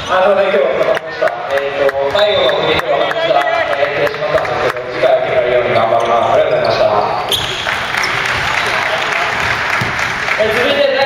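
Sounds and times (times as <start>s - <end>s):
crowd noise: 0.0s - 11.0s
basketball bouncing on wooden court: 7.3s - 10.7s.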